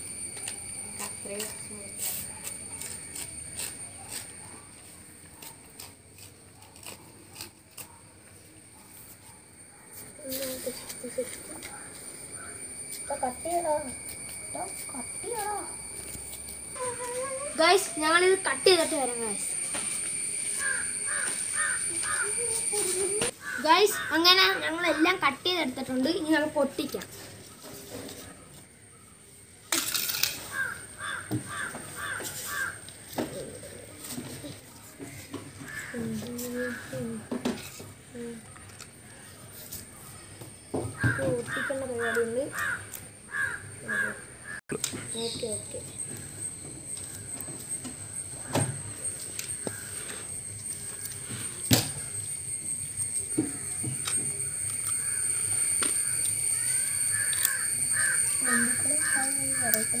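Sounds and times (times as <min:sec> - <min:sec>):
bird calling: 0:20.4 - 0:24.6, 0:30.4 - 0:33.8, 0:40.1 - 0:52.2, 0:53.2 - 1:00.0.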